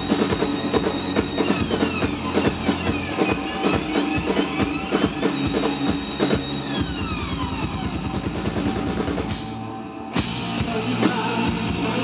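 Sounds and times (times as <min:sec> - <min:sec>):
drum hits and rolls: 0:00.0 - 0:12.0
electric guitar sliding notes: 0:00.0 - 0:12.0.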